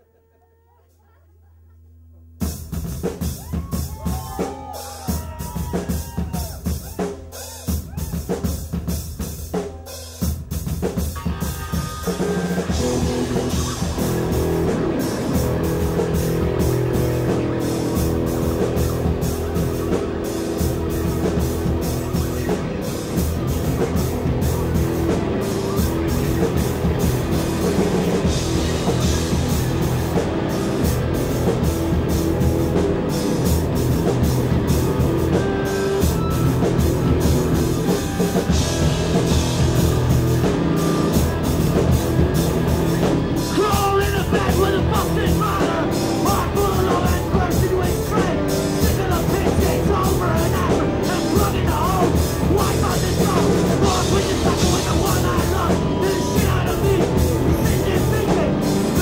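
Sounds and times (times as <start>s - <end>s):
bass and guitars: 0.0s - 59.0s
drum kit playing: 2.4s - 59.0s.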